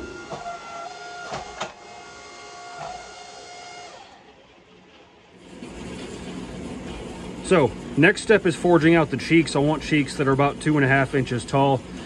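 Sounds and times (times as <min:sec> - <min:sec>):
hydraulic press whine: 0:00.0 - 0:12.0.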